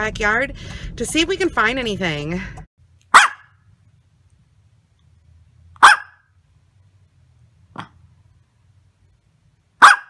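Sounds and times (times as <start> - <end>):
small dog barking: 3.1 - 3.6, 5.8 - 6.3, 9.8 - 10.0.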